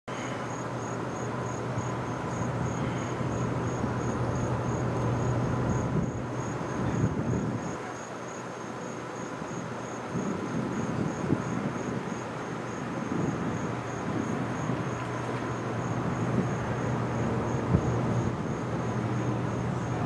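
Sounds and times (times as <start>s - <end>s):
insect chirping: 0.1s - 20.0s.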